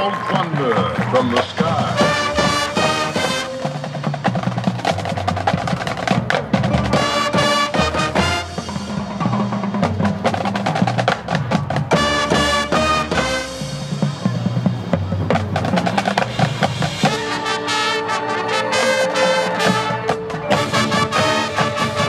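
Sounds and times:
marching band playing: 0:00.0 - 0:22.0
mallet percussion notes: 0:00.8 - 0:22.0.

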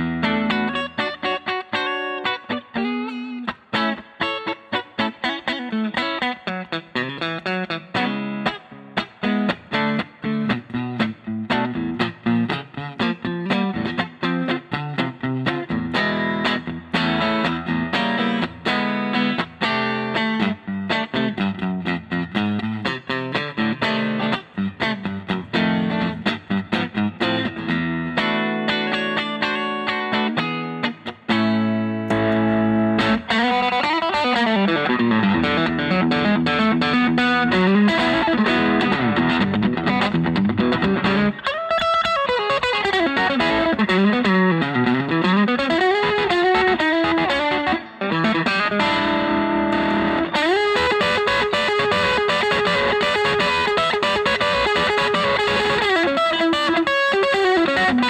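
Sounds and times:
electric guitar through an amp: 0:00.0 - 0:58.0.

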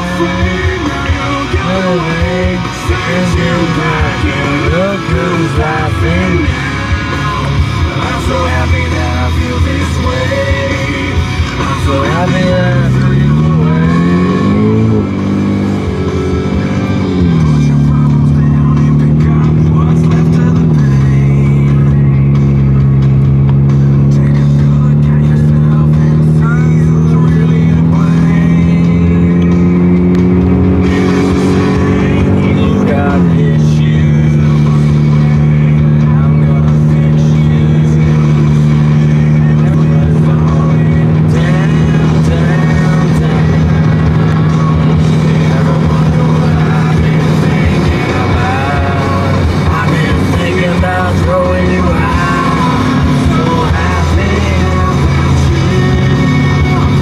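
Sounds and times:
car engine accelerating: 0:00.0 - 0:57.0.

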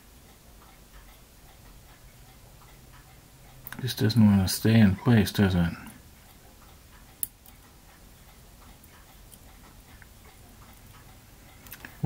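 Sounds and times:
light ticks: 0:00.2 - 0:04.4, 0:05.8 - 0:12.0.

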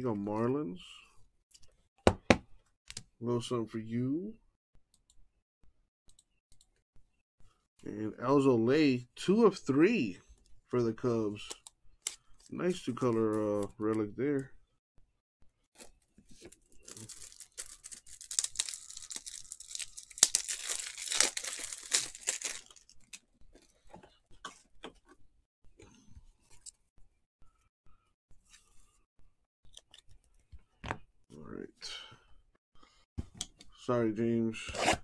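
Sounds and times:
plastic packaging crinkling and tearing: 0:16.4 - 0:23.2.

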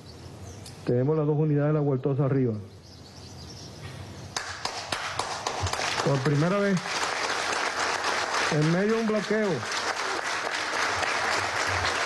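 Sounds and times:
audience applauding: 0:04.4 - 0:12.0.

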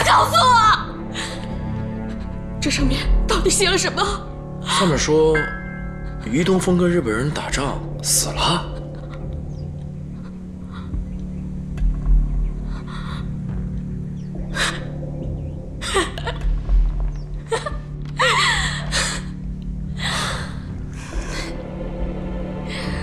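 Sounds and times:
woman sobbing: 0:00.0 - 0:05.0, 0:08.2 - 0:09.5, 0:15.8 - 0:16.6, 0:17.4 - 0:21.6, 0:22.7 - 0:23.0
low background music: 0:00.0 - 0:23.0.

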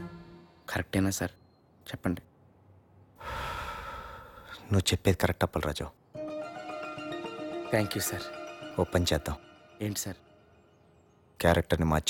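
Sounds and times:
person speaking: 0:07.6 - 0:10.2.

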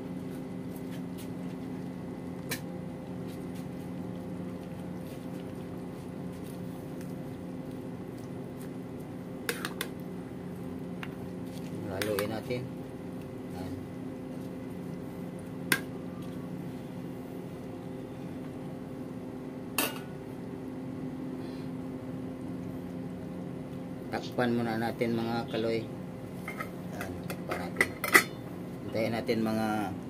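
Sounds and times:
steady low hum: 0:00.0 - 0:30.0
spoon stirring food in a pot: 0:10.9 - 0:12.4.

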